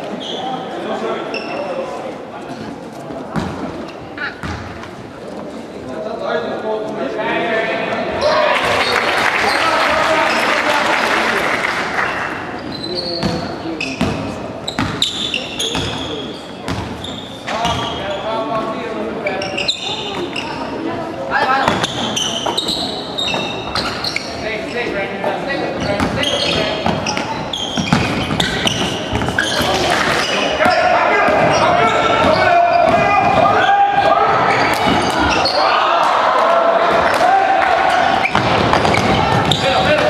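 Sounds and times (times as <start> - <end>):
sneaker squeaks: 0.0 - 2.0, 3.3 - 5.0, 8.8 - 10.6, 12.1 - 35.8, 37.8 - 40.0
basketball bouncing on wooden floor: 4.4 - 4.7, 14.8 - 15.0, 26.8 - 29.4
spectators shouting and cheering: 7.6 - 12.5, 29.4 - 40.0
players calling: 7.8 - 18.5, 25.6 - 40.0.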